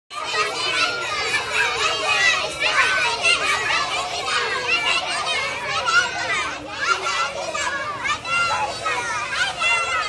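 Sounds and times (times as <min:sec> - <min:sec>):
young children calling out: 0:00.1 - 0:10.0.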